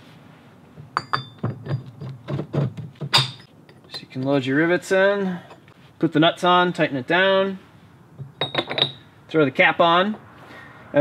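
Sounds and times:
metal clinks and knocks on wood: 0:00.8 - 0:04.4, 0:08.2 - 0:09.0.

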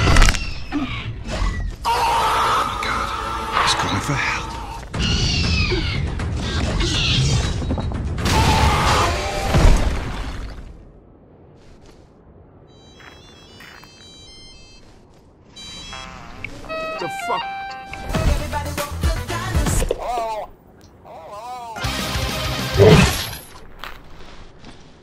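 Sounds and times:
short high tones: 0:15.6 - 0:18.3
soundtrack music: 0:16.5 - 0:19.8
dinosaur calls: 0:22.7 - 0:23.2.

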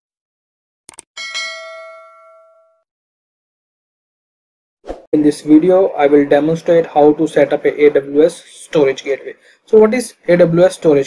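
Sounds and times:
quick clicks: 0:00.9 - 0:01.1
notification bell ding: 0:01.2 - 0:02.9.

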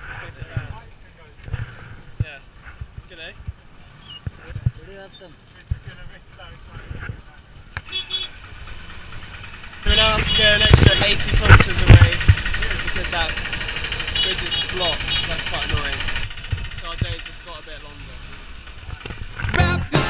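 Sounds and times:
roadside traffic noise: 0:00.0 - 0:20.0.

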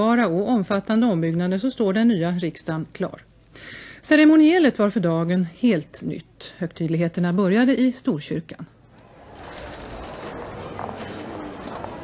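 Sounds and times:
hum of people gathering: 0:08.7 - 0:12.0.

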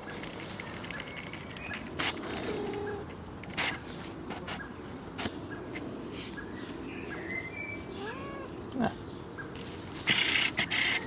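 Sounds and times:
rustling against microphone: 0:00.0 - 0:06.8
cat meowing: 0:07.9 - 0:08.6.

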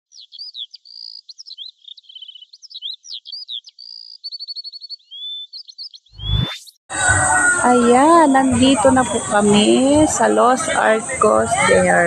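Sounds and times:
songbirds singing and chirping: 0:00.0 - 0:06.4.

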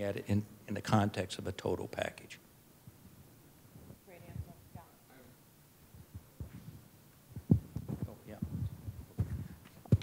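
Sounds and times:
microphone handling thumps: 0:03.7 - 0:04.9, 0:05.9 - 0:10.0.

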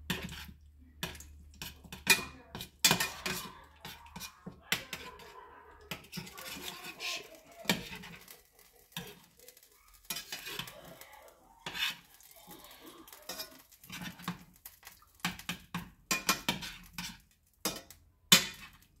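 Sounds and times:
metal spoon scraping frying pan: 0:00.0 - 0:19.0.

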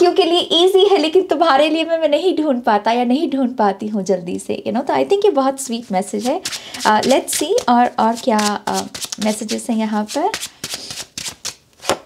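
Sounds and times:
cards shuffling: 0:06.1 - 0:12.0.

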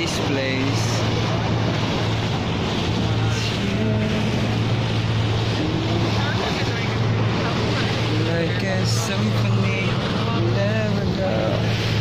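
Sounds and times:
motorboat engine droning: 0:00.0 - 0:12.0
water rushing along hull: 0:00.0 - 0:12.0.

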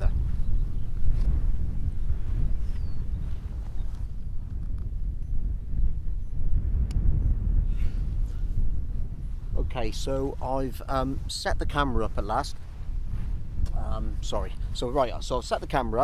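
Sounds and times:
wind buffeting microphone: 0:00.0 - 0:16.0
sharp click: 0:06.8 - 0:07.0.

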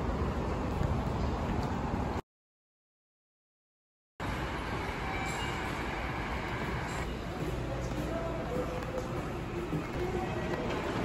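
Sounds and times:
station concourse rumble: 0:00.0 - 0:02.2, 0:04.2 - 0:11.0
train running nearby: 0:04.2 - 0:11.0.

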